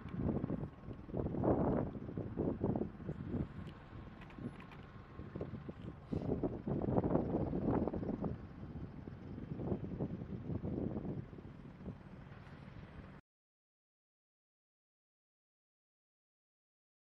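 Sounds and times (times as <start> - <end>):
wind buffeting microphone: 0.0 - 12.2
helicopter rotor drone: 0.0 - 13.2.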